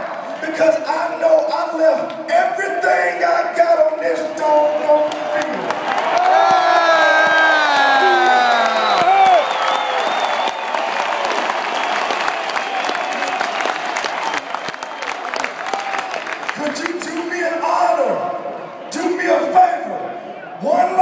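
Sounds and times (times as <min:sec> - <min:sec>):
stadium crowd cheering and applauding: 0:04.3 - 0:19.6
fans shouting: 0:04.8 - 0:21.0.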